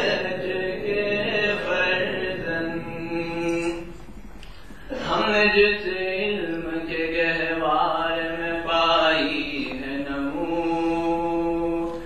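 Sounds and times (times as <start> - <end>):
chant-like singing: 0.0 - 4.0, 4.9 - 12.0.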